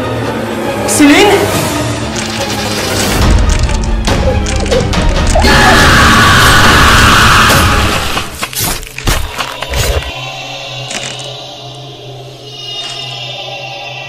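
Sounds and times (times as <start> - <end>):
eerie music: 0.0 - 14.0.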